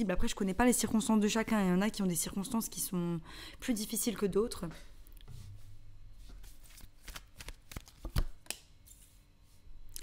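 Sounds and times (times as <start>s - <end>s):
cards shuffling: 6.4s - 9.0s.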